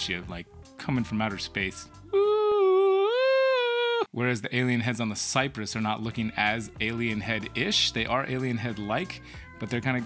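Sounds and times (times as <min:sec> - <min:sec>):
man humming in falsetto: 0:02.1 - 0:04.1.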